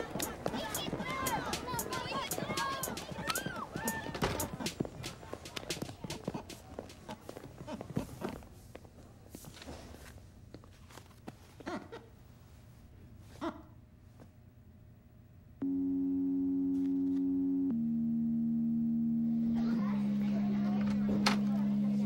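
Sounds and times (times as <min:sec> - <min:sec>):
children chattering: 0:00.0 - 0:08.3, 0:19.3 - 0:22.0
shoes clicking on tiled floor: 0:00.0 - 0:11.8.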